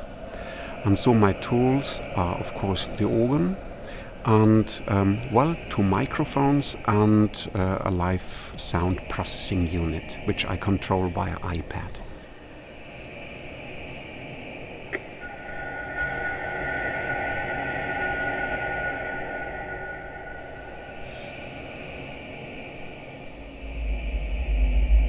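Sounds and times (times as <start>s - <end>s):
high sweep: 14.8s - 24.4s
loud deep low drone: 14.9s - 25.0s
held high electronic tone: 15.0s - 23.6s.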